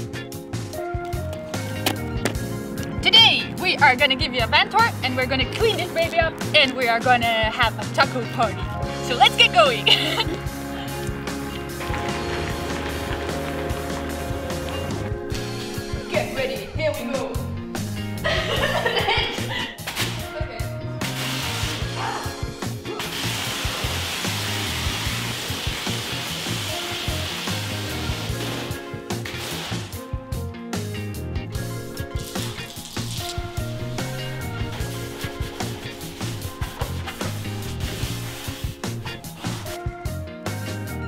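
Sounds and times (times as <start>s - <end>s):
background music with bass line: 0.0s - 41.0s
pressure washer spray hissing: 21.0s - 22.0s, 23.0s - 30.0s, 32.0s - 39.8s.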